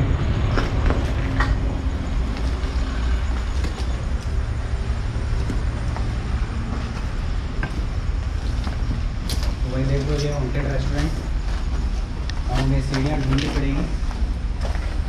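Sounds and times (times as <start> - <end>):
road traffic rumble: 0.0 - 15.0
footsteps on brick rubble: 0.4 - 15.0.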